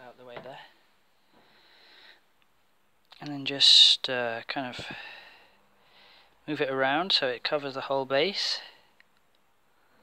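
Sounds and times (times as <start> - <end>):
faint soft hiss: 0.0 - 10.0.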